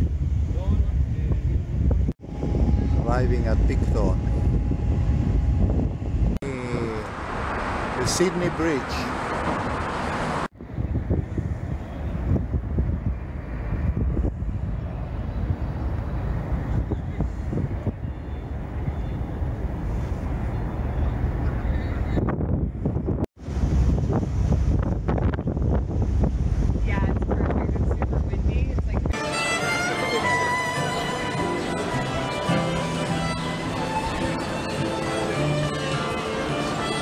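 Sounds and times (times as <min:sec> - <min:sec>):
wind buffeting microphone: 0:00.0 - 0:06.4, 0:09.0 - 0:29.2.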